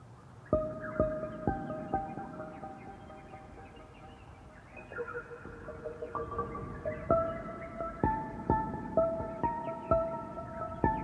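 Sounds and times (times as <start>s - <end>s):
calm ambient music: 0.0s - 11.0s.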